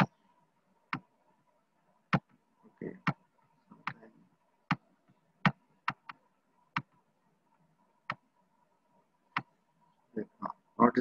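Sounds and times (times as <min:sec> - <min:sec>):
computer mouse clicking: 0:05.4 - 0:06.9.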